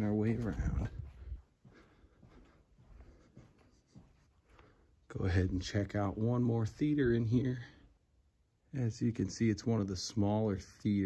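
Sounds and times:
faint footsteps and scuffs: 0.0 - 7.9.

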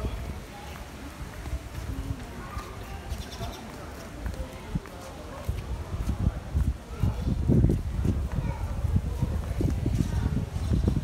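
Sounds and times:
footsteps on brick paving: 0.0 - 11.0
wind on microphone: 0.0 - 11.0.

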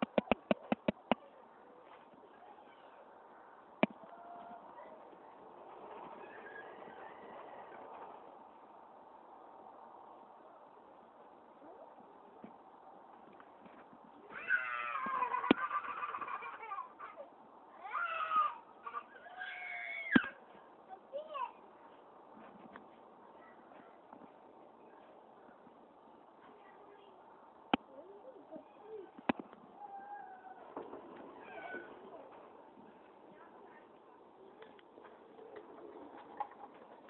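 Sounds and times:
toddler whining cries: 14.3 - 16.7, 17.8 - 20.4, 29.8 - 30.7, 31.4 - 32.0.

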